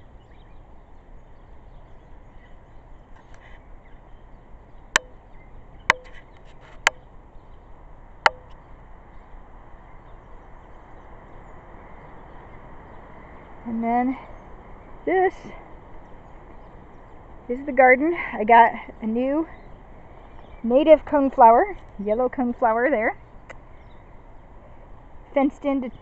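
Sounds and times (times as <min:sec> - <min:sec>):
low background hiss: 0:00.0 - 0:26.0.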